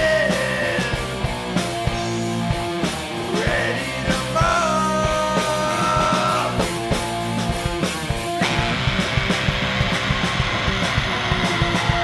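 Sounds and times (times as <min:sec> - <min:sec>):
bass guitar: 0:00.0 - 0:12.0
distorted electric guitar riff: 0:00.0 - 0:12.0
drum hits and cymbal strikes: 0:00.0 - 0:12.0.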